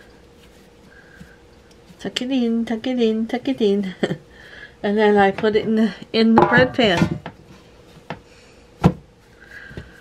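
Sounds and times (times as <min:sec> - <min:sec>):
quiet handling of dough: 0:00.0 - 0:06.0.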